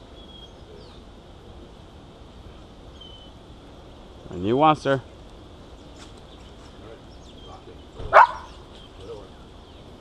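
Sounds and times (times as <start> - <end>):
dog barking: 8.1 - 8.6.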